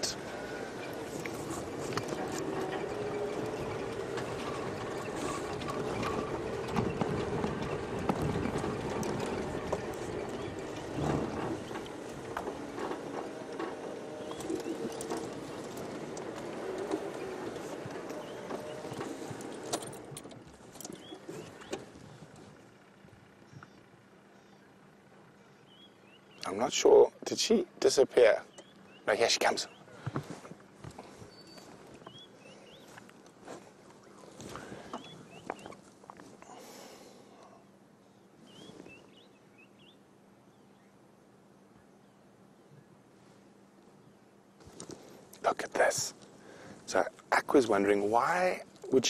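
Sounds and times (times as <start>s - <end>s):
knocks and rattles over bumps: 0.0s - 23.0s
vehicle engine driving: 0.0s - 27.0s, 27.8s - 37.5s.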